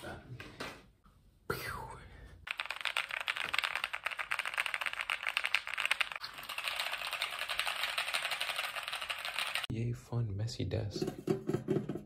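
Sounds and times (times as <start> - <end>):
mechanical keyboard keys clattering: 2.5 - 9.7.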